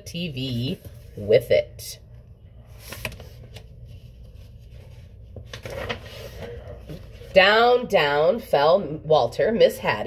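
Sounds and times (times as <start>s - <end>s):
book pages turning: 2.6s - 7.4s.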